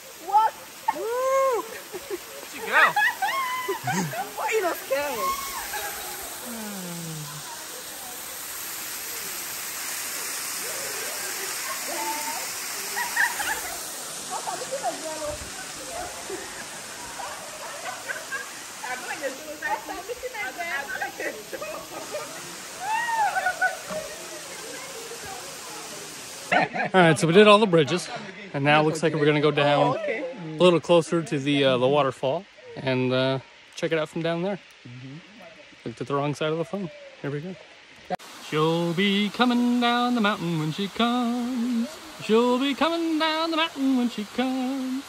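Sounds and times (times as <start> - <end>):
faint voices: 0.0 - 26.6
waterfall rushing: 0.0 - 33.9, 34.6 - 45.0.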